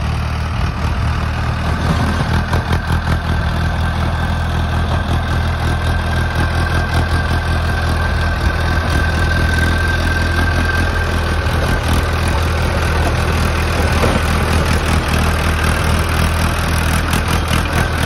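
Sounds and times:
tractor diesel engine running: 0.0 - 18.0.

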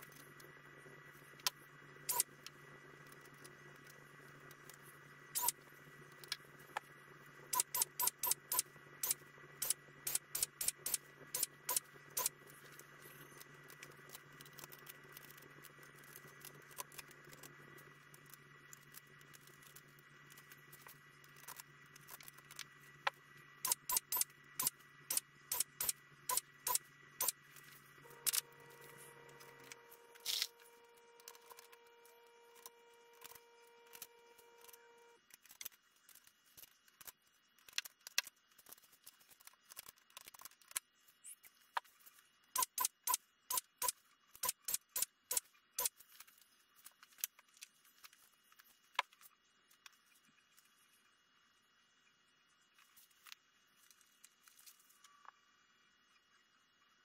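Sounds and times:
sharp metallic clicks: 7.5 - 12.4, 23.6 - 27.4, 42.6 - 46.0.

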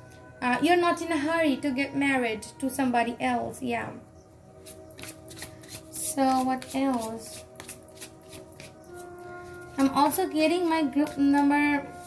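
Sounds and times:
soft background music: 0.0 - 12.0
cards being shuffled: 4.6 - 9.0.

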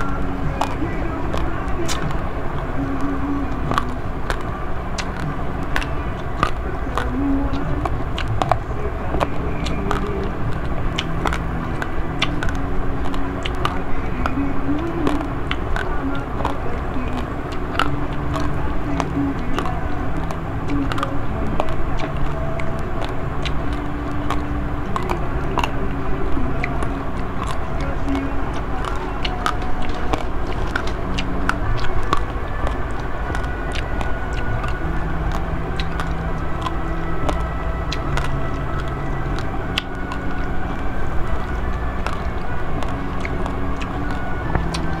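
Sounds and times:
crunching rice grains: 0.0 - 45.0
low rumble with hum: 0.0 - 45.0.

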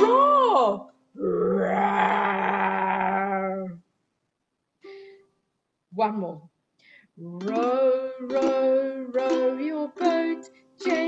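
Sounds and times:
woman imitating lion roar: 1.2 - 3.8.

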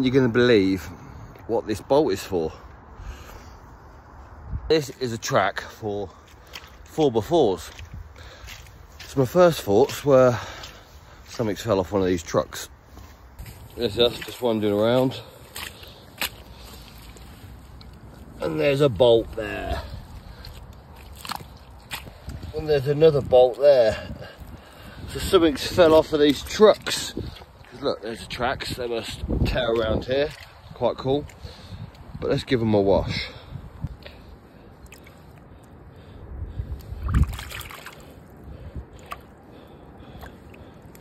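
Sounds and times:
faint outdoor background: 0.0 - 41.0
footsteps on muddy track: 5.6 - 32.1
water sloshing in puddle: 6.1 - 11.3, 13.4 - 28.4, 29.6 - 32.1, 34.6 - 35.8, 36.8 - 41.0.

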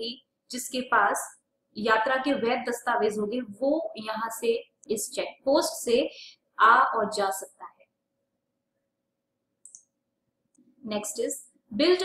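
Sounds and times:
woman speaking: 0.0 - 7.8, 10.8 - 12.0.

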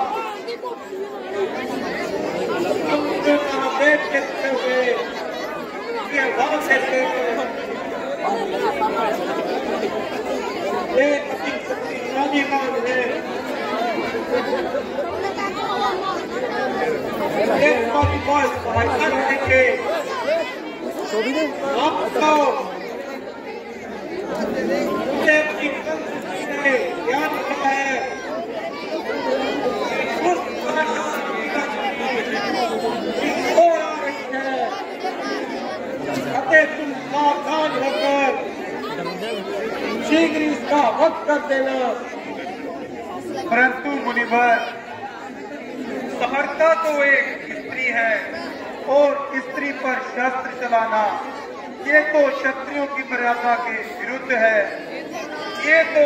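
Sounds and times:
people talking: 0.0 - 22.8
several voices talking: 0.0 - 56.0.

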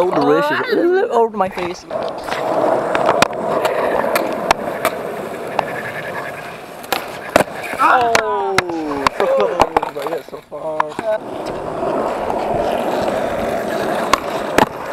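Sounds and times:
skateboard wheels rolling on concrete: 0.0 - 14.9
skateboard clacks: 1.5 - 14.9.

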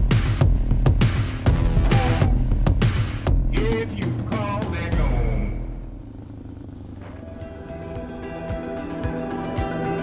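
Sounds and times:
motorcycle engine rumble: 0.0 - 9.8.

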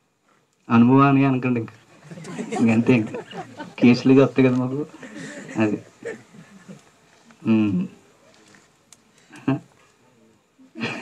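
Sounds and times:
man speaking: 2.4 - 6.2, 7.4 - 8.3.

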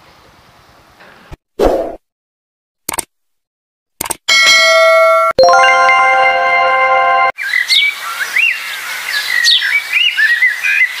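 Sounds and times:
ringing chime tones: 4.3 - 7.4.

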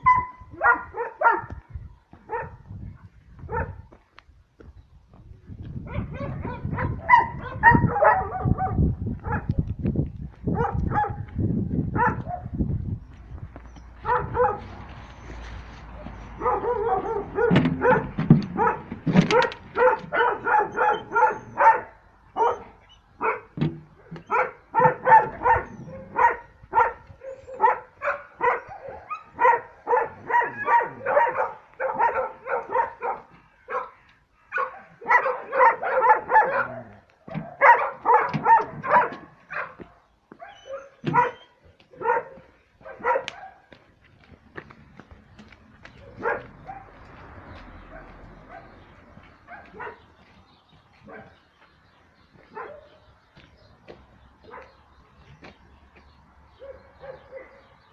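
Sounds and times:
wolf yelping: 16.4 - 23.4, 24.2 - 33.9, 34.5 - 39.7.

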